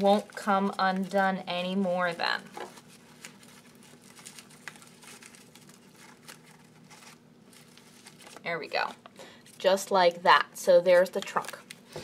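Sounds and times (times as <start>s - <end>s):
paper crinkling: 0.0s - 10.0s, 10.8s - 12.0s.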